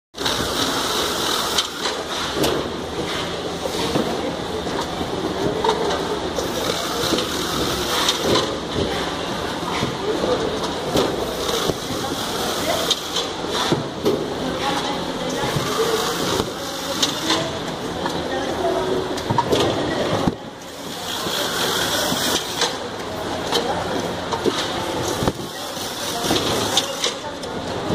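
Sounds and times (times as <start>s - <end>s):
taping machine running: 0.2s - 2.2s, 6.4s - 8.5s.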